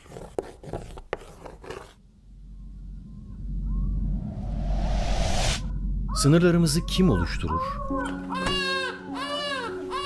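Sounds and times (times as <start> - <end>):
low rumble: 2.0 - 8.2
faint chirp-like glides: 2.2 - 7.9.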